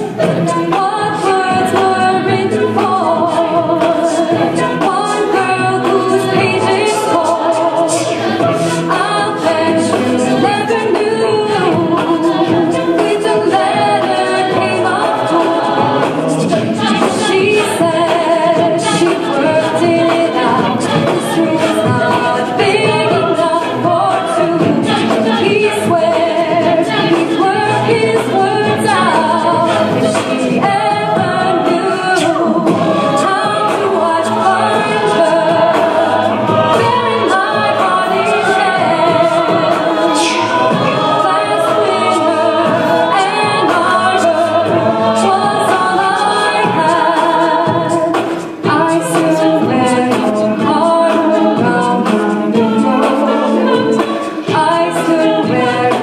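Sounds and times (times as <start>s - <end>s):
a cappella group singing: 0.0s - 56.0s.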